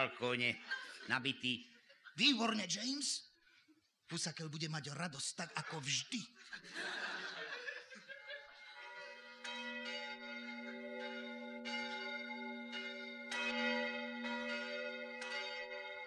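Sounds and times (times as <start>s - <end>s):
bells ringing: 6.8s - 16.0s.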